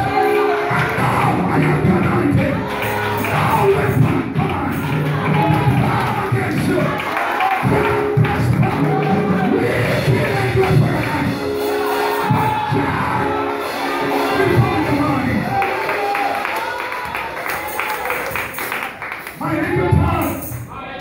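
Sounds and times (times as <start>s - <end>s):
man singing into microphone: 0.0s - 11.6s, 12.3s - 13.5s
backing music: 0.0s - 20.7s.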